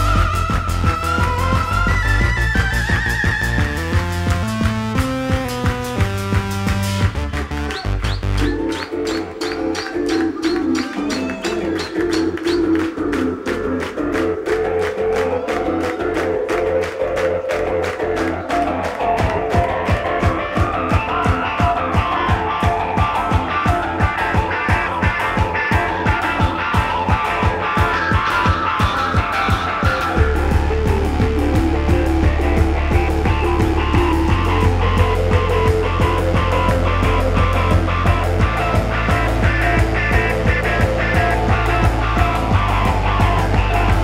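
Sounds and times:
live band playing: 0.0s - 44.0s
drums quick even beat: 19.2s - 44.0s
deep bass note: 30.2s - 44.0s.

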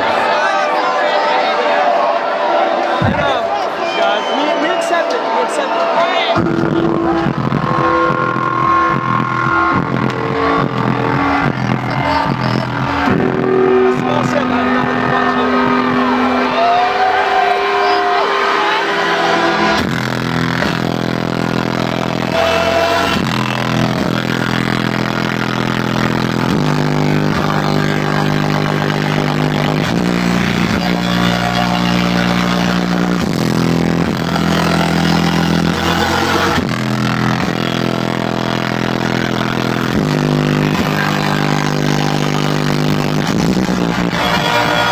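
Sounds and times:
distorted dubstep music: 6.3s - 44.9s.

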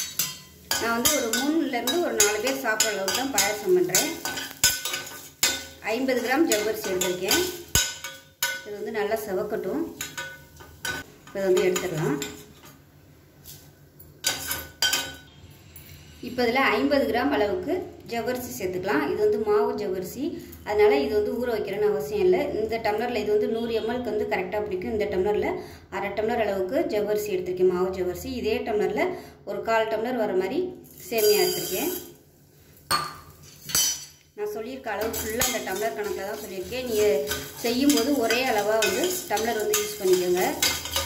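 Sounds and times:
steel ladle scraping a pan: 0.0s - 8.8s, 35.0s - 41.0s
woman talking: 0.8s - 4.4s, 5.8s - 7.6s, 8.7s - 10.0s, 11.3s - 12.4s, 16.2s - 32.1s, 34.4s - 40.7s
metallic clatters with ring: 30.9s - 32.1s, 35.0s - 41.0s.

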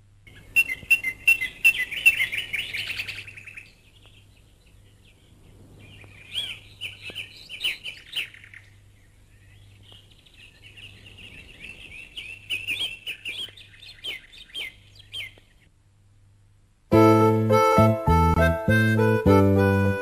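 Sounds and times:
faint low hum: 0.0s - 18.6s
small birds chirping: 0.2s - 15.8s.

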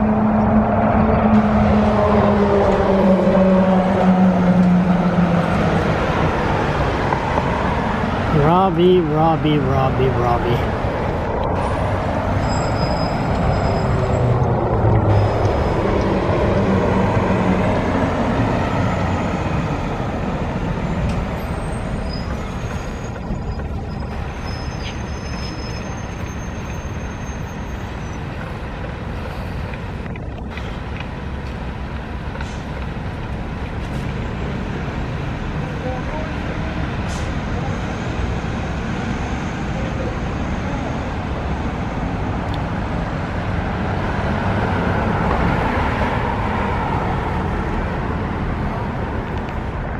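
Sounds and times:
rumble of passing vehicles: 0.0s - 49.9s.

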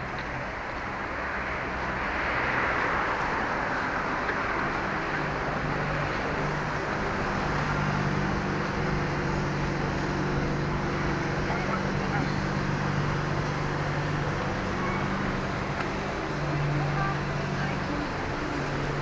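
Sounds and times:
car and road noise: 0.0s - 19.0s
idling engines humming: 0.0s - 19.0s.

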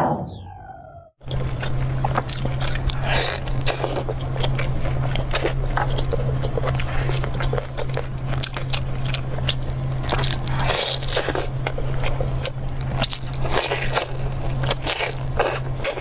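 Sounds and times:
steady low hum: 0.0s - 16.0s
person chewing meat: 1.2s - 16.0s.

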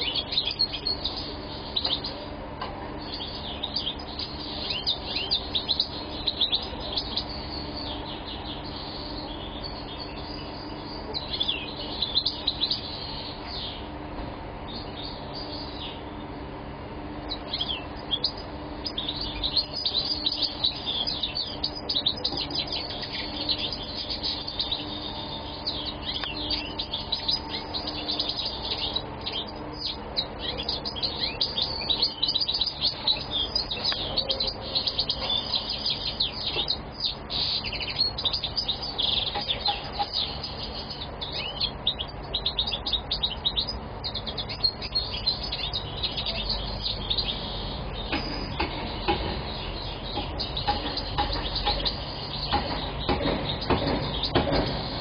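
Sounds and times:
goldfinch singing: 0.0s - 2.3s, 3.0s - 13.9s, 17.2s - 55.0s.

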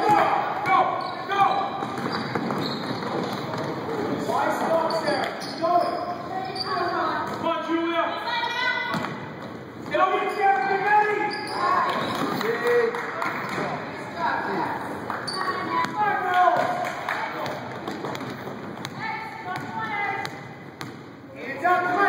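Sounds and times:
basketball bouncing on wooden floor: 1.8s - 3.8s, 17.4s - 21.0s.

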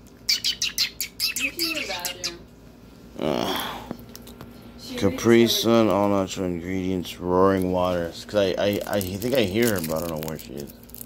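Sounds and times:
bird chirping: 0.3s - 2.4s.

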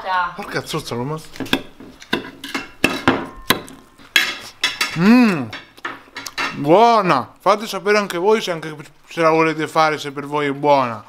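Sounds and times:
cutlery clinking on a plate: 1.4s - 6.7s.

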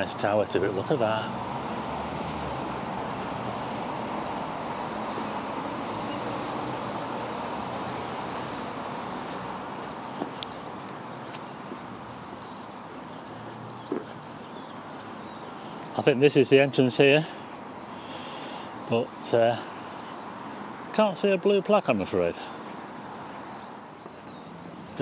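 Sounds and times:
distant road traffic: 0.0s - 25.0s
faint clicks: 10.3s - 10.6s.

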